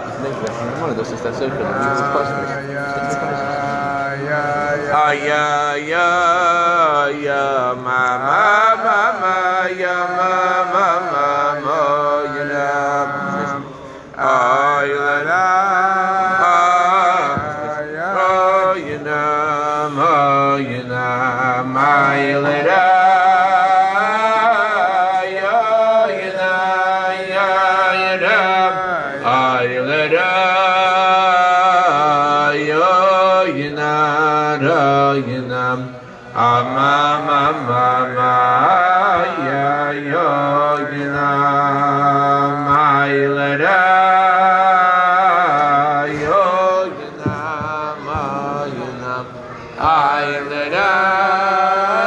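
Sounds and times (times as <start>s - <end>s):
men singing wordless melody: 1.6s - 52.0s.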